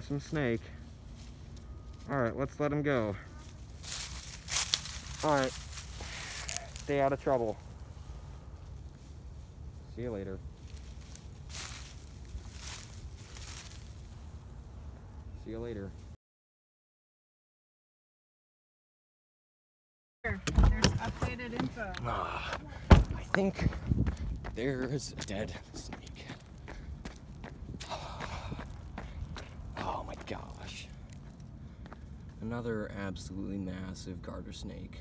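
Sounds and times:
steady low rumble: 0.0 - 16.2, 20.3 - 35.0
rustling in dry leaves: 0.2 - 2.2, 3.3 - 14.8
footsteps on asphalt: 3.4 - 6.9, 10.6 - 14.3, 20.8 - 32.5.

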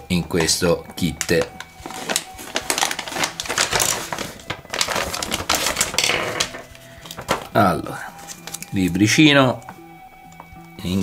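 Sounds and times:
plastic bag crinkling: 0.4 - 9.0
small parts rattling: 2.1 - 7.4.

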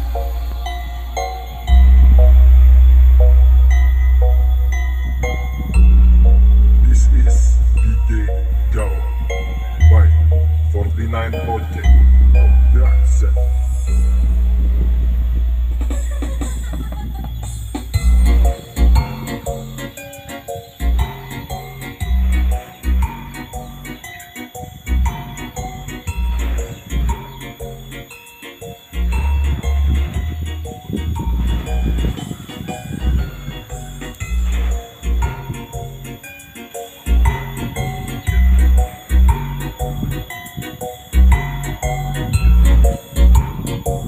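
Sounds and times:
music with deep bass notes: 0.0 - 44.0
loud music through speakers: 15.8 - 27.5, 36.5 - 44.0.

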